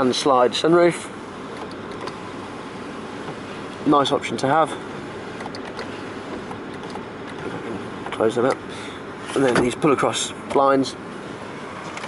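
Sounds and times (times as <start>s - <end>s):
car cabin mechanical hum: 0.0s - 12.0s.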